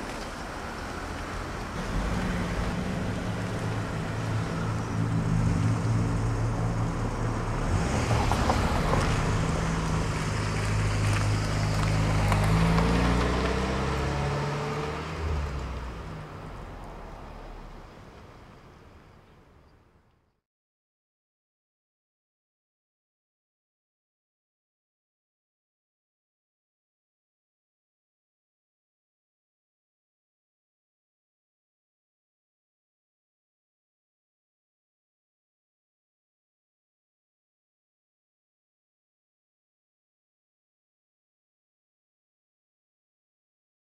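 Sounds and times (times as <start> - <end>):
road noise: 0.0 - 20.4.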